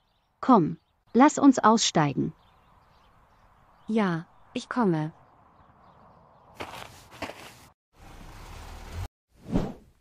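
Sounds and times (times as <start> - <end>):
cartoon footsteps: 6.6 - 7.7.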